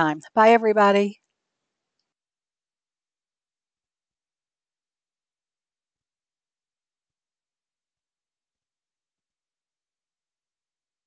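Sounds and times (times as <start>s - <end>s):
woman saying goodbye: 0.0s - 1.1s.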